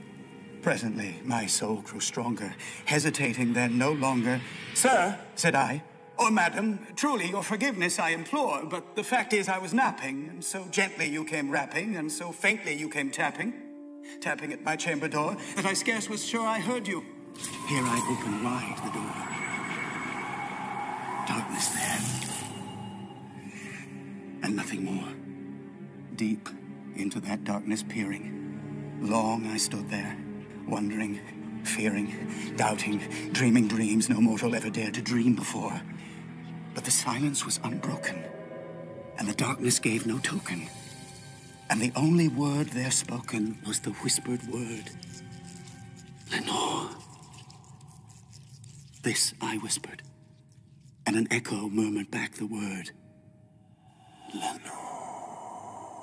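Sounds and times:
faint high whistle: 17.3 - 24.2, 37.6 - 40.4.

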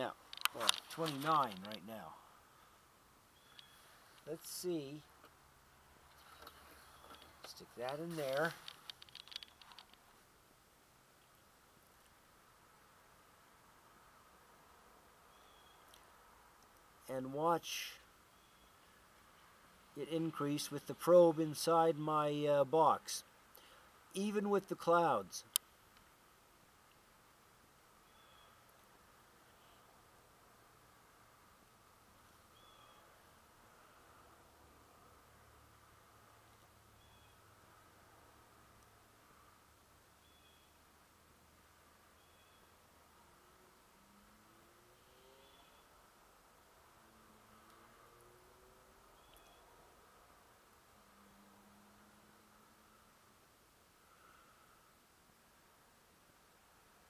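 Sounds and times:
faint steady hiss: 0.0 - 57.0
soft clicks and rustles: 0.2 - 1.9, 6.0 - 10.4.

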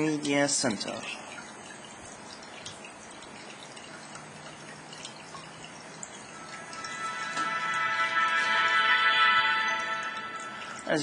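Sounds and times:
startup music from speakers: 6.4 - 11.0.

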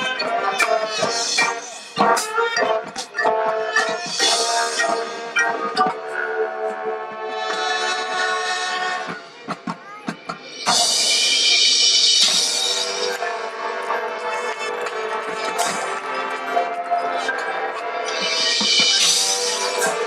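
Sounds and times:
marching band playing: 0.0 - 9.5, 10.4 - 20.0.

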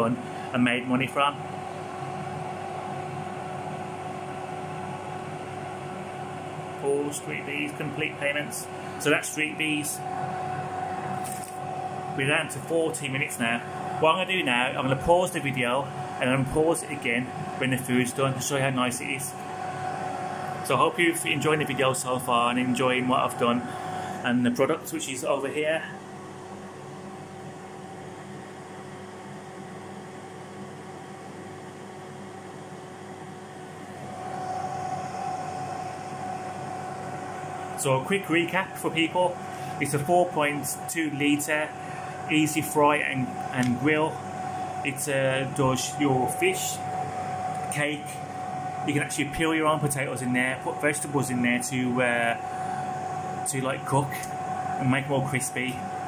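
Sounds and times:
air fryer fan whirring: 0.0 - 56.0.

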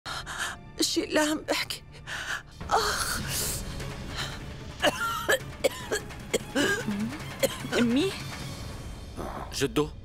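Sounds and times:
woman coughing: 4.8 - 7.9.

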